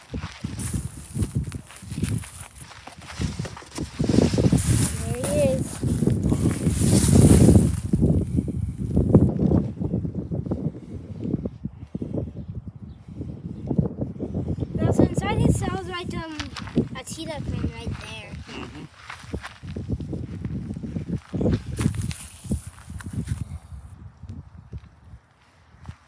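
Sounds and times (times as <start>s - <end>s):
footsteps through weeds and grass: 0.0s - 9.1s, 16.2s - 23.6s.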